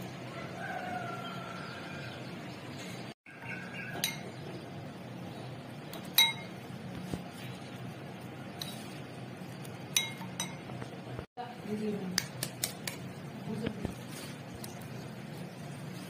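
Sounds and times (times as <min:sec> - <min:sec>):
metal spoon clinking against glass bowl: 0:03.9 - 0:04.4, 0:05.9 - 0:06.6, 0:09.9 - 0:10.8.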